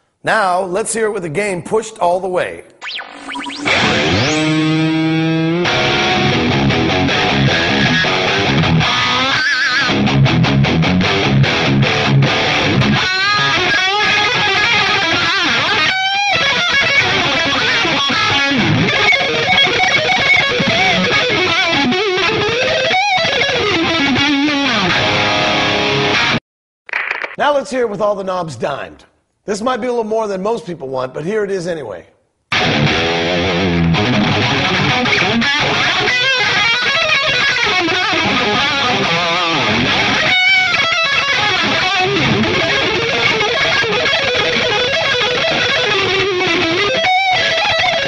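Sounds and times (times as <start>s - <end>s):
distorted electric guitar riffing: 2.8s - 26.4s, 32.5s - 48.0s.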